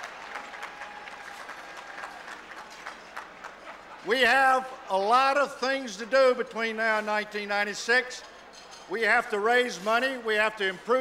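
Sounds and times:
audience applause: 0:00.0 - 0:04.0.

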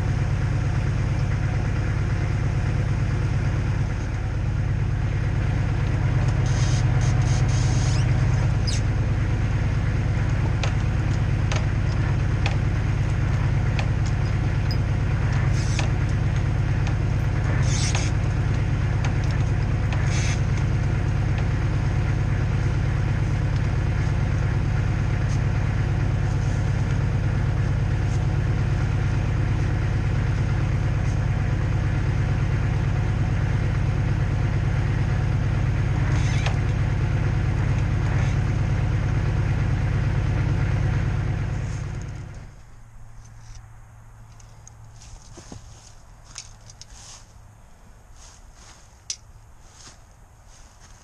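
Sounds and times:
engine idling: 0:00.0 - 0:51.0.

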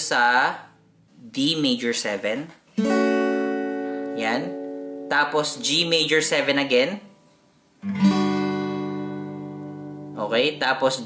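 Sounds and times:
acoustic guitar chord strummed: 0:02.8 - 0:05.8, 0:07.8 - 0:11.0.

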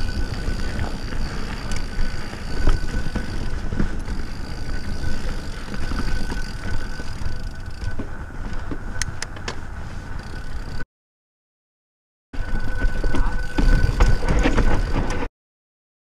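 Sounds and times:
bike tyres rumbling over dirt: 0:00.0 - 0:10.8, 0:12.4 - 0:15.3
high buzz of freewheeling hub: 0:00.0 - 0:10.8, 0:12.4 - 0:15.1
wind on microphone: 0:00.0 - 0:10.8.

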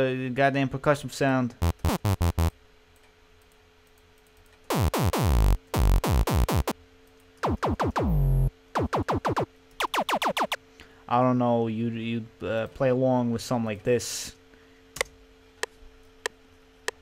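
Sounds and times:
falling synth sweep: 0:01.6 - 0:02.5, 0:04.7 - 0:06.7, 0:07.4 - 0:10.6
synthetic percussion hits: 0:01.6 - 0:02.5, 0:04.7 - 0:06.8, 0:07.4 - 0:10.6.

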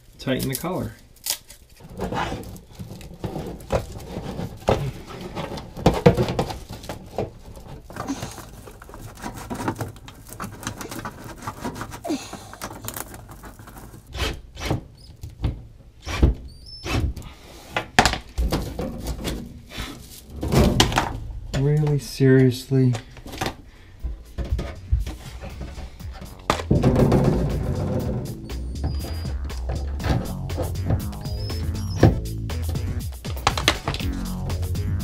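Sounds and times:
foil duct crinkling and rustling: 0:00.0 - 0:14.1.

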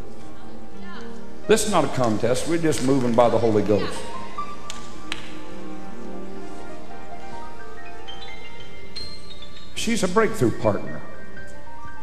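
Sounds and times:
held keyboard chords: 0:01.1 - 0:12.0.

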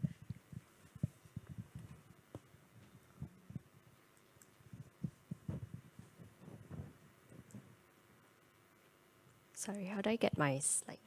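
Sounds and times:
microphone handling thumps: 0:00.0 - 0:03.8, 0:04.7 - 0:07.8
faint room hum: 0:00.0 - 0:11.0.

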